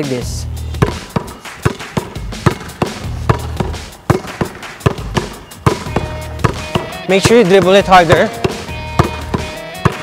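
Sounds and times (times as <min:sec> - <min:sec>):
background music with bass: 0:00.0 - 0:10.0
basketball bouncing on court: 0:00.8 - 0:10.0.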